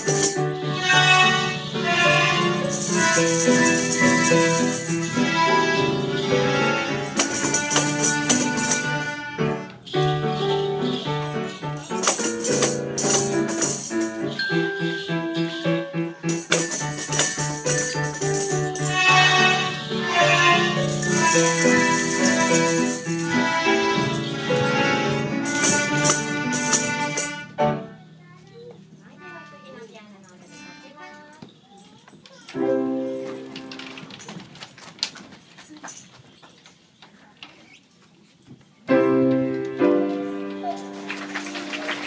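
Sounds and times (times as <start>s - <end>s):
melodica ensemble playing: 0.0s - 11.4s, 18.4s - 27.6s, 29.2s - 31.3s
drums and tambourines: 0.0s - 27.9s, 39.8s - 42.0s
knocks and shuffling on wooden floor: 31.4s - 40.6s.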